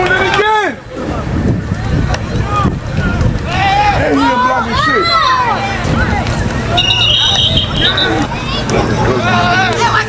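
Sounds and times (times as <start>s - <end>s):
crowd voices calling out: 0.0s - 10.0s
wind rumble on microphone: 0.0s - 10.0s.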